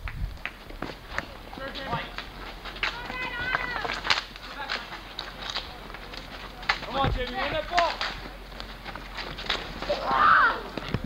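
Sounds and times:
running footsteps: 0.0 - 11.0
hockey sticks and ball clacking: 0.4 - 11.0
voices calling out: 0.9 - 11.0
drawn-out shout: 2.7 - 4.1, 9.9 - 10.8.

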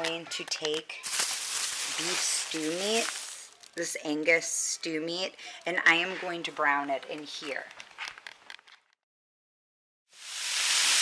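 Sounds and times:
meat sizzling in a pot: 10.1 - 11.0.

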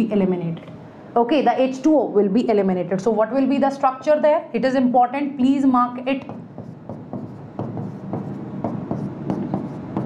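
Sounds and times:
chalk writing on blackboard: 6.2 - 10.0.

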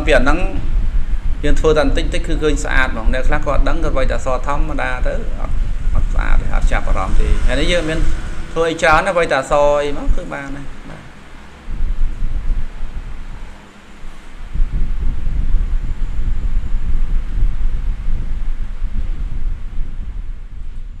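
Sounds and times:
low noisy rumble: 0.0 - 21.0.

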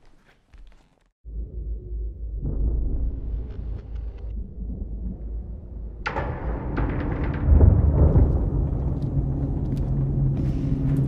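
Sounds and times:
low rumbling drone: 1.2 - 11.0.

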